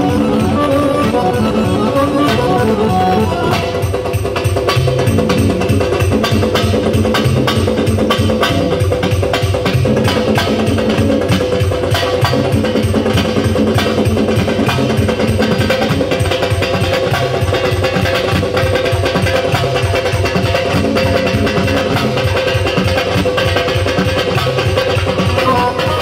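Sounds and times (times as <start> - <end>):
electronic keyboard melody: 0.0 - 4.1, 25.4 - 26.0
fast drum rhythm with sticks: 0.0 - 26.0.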